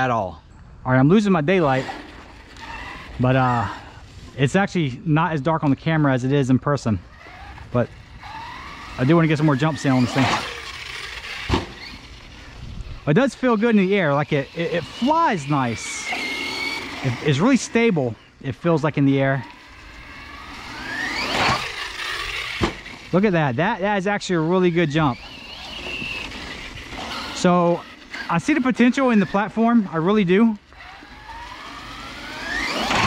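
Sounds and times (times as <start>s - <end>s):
electric motor whining: 1.5s - 4.4s, 7.0s - 33.0s
toy truck thud on grass: 11.3s - 12.0s, 22.5s - 23.0s
wind noise on microphone: 12.2s - 13.1s.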